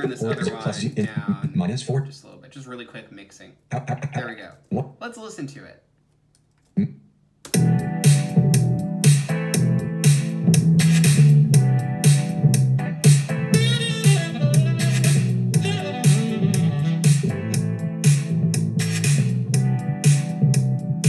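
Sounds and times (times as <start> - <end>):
steady beat: 0.0 - 1.8, 7.5 - 21.0
electric piano loop: 7.5 - 21.0
deep bassline: 7.6 - 21.0.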